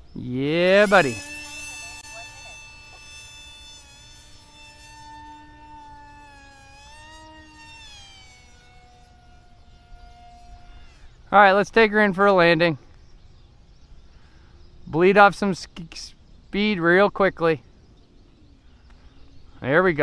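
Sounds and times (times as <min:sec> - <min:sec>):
electric model plane motor whine: 0:00.0 - 0:12.2.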